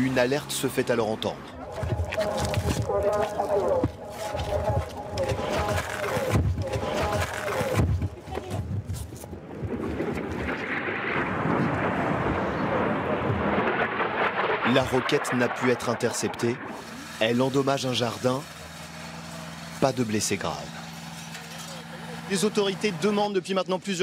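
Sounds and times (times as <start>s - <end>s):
people's voices: 0.0s - 8.9s, 21.5s - 24.0s
hurried footsteps: 1.6s - 10.0s
steady rushing noise: 1.6s - 19.1s.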